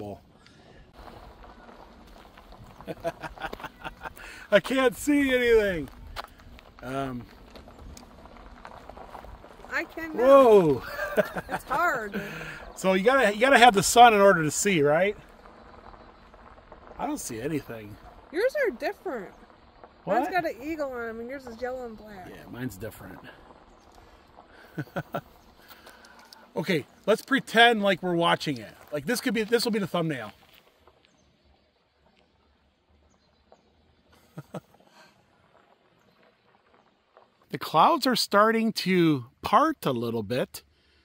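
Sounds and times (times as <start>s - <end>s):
faint outdoor background noise: 0.0s - 41.0s
person speaking: 9.7s - 14.6s.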